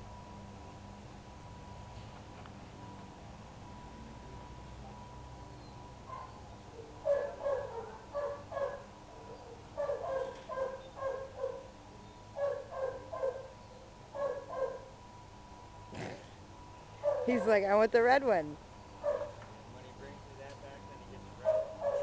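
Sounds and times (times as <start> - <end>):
dog barking: 6.1 - 6.4, 7.0 - 11.7, 12.4 - 14.9, 17.0 - 17.6, 19.0 - 19.4, 21.4 - 22.0.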